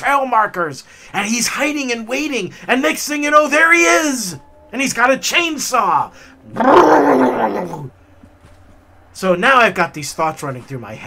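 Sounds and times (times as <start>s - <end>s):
man growling like a chainsaw: 6.5s - 7.9s.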